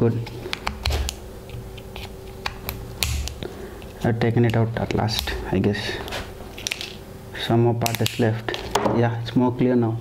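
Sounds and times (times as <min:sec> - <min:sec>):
plastic clicks and snaps: 0:07.8 - 0:08.8.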